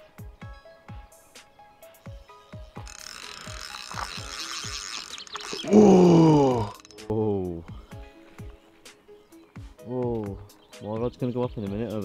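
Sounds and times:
background music with steady beat: 0.0 - 4.9, 6.0 - 12.0
fishing reel drag ratcheting: 2.7 - 7.1.

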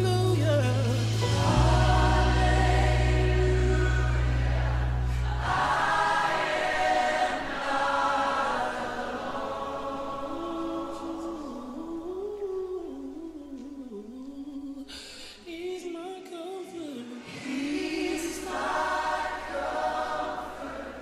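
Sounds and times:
low sustained bass notes: 0.0 - 5.6
gospel choir singing: 0.0 - 14.0, 16.8 - 21.0.

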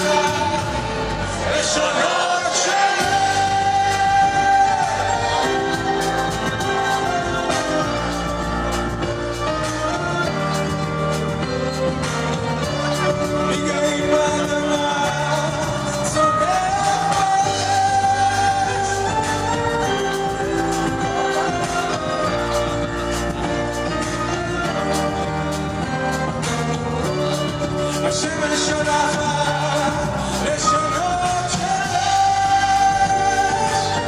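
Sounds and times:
bass guitar: 0.0 - 1.9, 3.0 - 34.0
live rock band: 0.0 - 34.0
man singing: 0.0 - 34.0.

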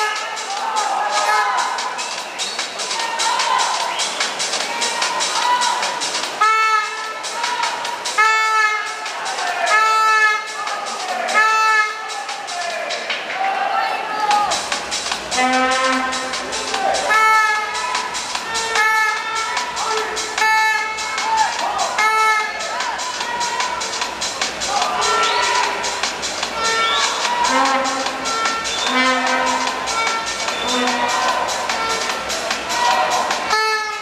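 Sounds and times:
spectators shouting: 0.0 - 34.0.

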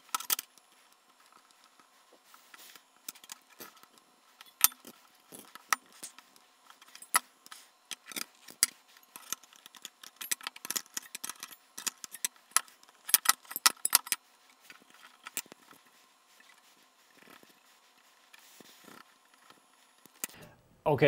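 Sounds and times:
metallic clicks and clinks: 7.9 - 14.2.

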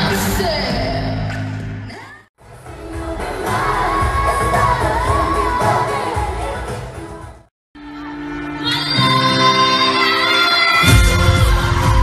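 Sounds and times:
crowd noise: 0.0 - 12.0
women singing live pop: 2.6 - 7.4, 8.4 - 12.0.

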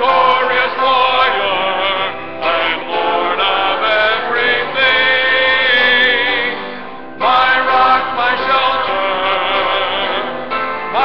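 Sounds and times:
church choir singing a hymn: 0.0 - 11.0.

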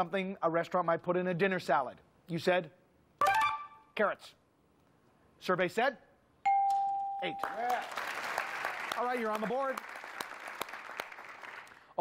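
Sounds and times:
held bell tone: 6.5 - 7.7
studio audience applauding: 7.4 - 12.0.

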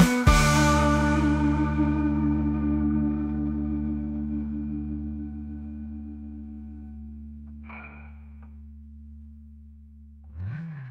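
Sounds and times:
held song chord ringing out: 0.0 - 8.4.

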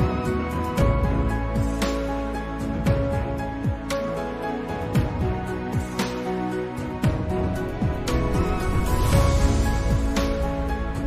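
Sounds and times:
soft synth instrumental music: 0.0 - 11.0.

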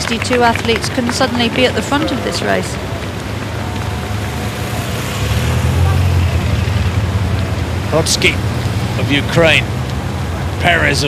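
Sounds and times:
low vehicle rumble: 0.0 - 11.0
steady outdoor noise: 0.0 - 11.0.

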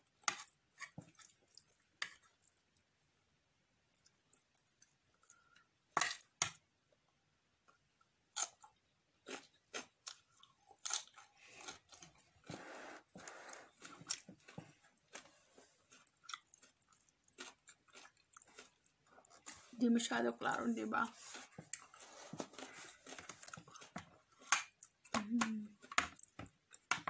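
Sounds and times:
crunchy chewing: 8.4 - 19.8, 21.1 - 25.1.

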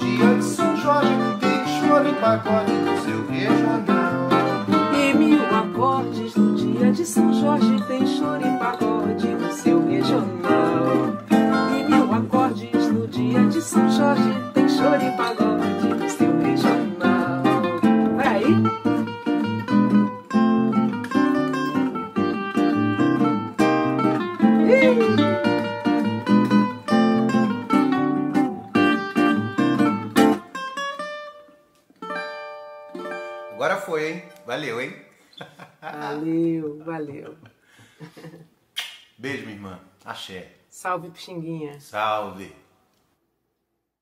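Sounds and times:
nylon-string acoustic guitar: 0.0 - 34.8
cavaquinho strumming: 0.0 - 35.0.

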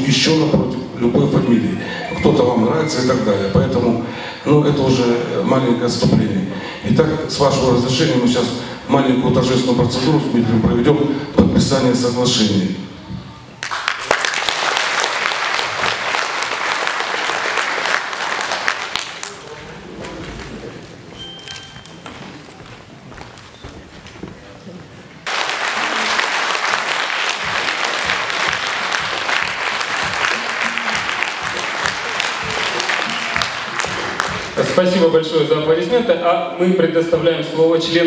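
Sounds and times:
audience applauding: 13.6 - 20.7, 25.2 - 34.8.

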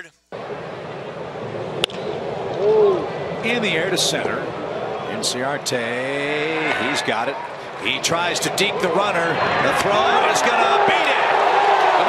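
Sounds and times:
crowd murmur: 2.2 - 12.0.

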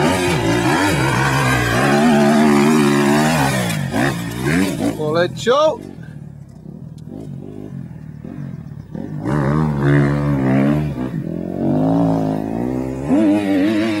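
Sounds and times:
motocross bike engine revving: 0.0 - 14.0.

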